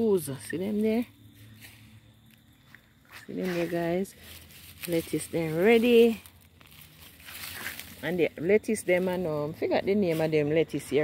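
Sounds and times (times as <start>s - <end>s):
footsteps on dry soil: 2.6s - 8.2s.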